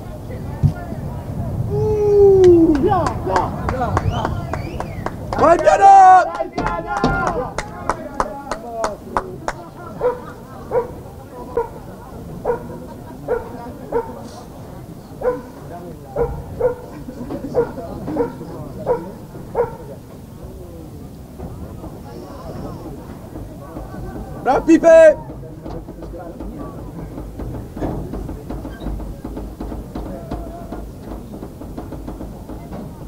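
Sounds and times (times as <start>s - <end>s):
dog barking: 10.0s - 14.4s, 15.2s - 15.6s, 16.2s - 20.0s.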